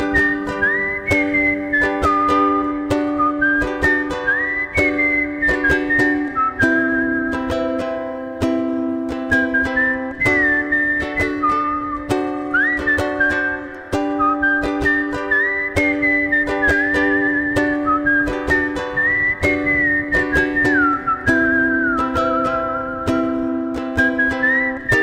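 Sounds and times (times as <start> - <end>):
person whistling melody: 0.0 - 25.0
ukulele strumming chords: 0.0 - 25.0.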